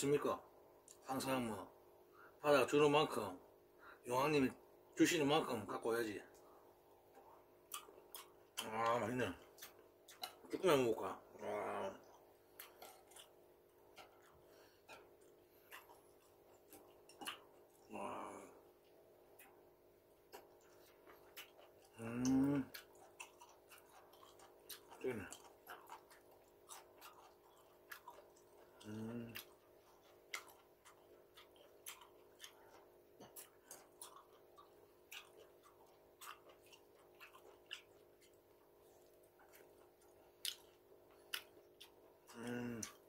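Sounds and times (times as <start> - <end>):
man chewing: 6.3 - 10.6, 11.3 - 43.0.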